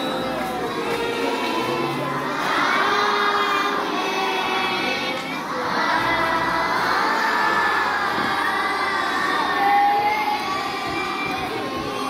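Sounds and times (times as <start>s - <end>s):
children shouting together: 0.0s - 12.0s.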